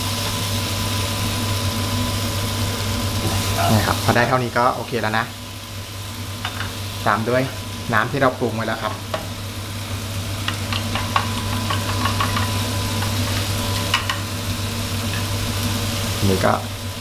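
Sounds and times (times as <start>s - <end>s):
shrimp and onion sizzling in a wok: 0.0s - 17.0s
steady low hum: 0.0s - 17.0s.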